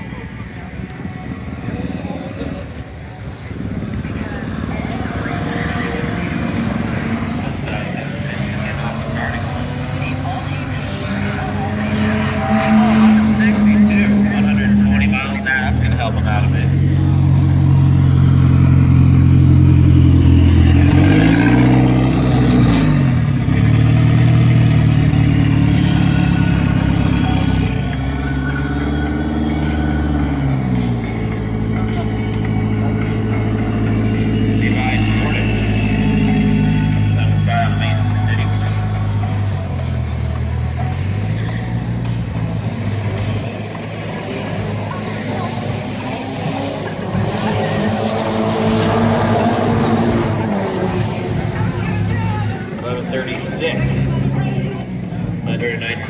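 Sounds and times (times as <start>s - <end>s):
car engine revving: 3.6s - 56.0s.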